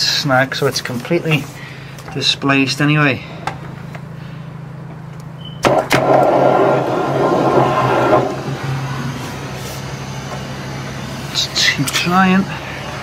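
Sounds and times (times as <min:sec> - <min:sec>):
drain jetting machine droning: 0:00.0 - 0:13.0.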